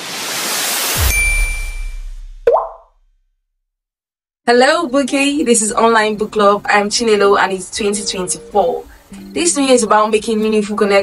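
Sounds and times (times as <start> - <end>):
bright ringing ding: 1.0 - 2.4
rising pop: 1.0 - 3.1
deep boom hit: 1.0 - 3.2.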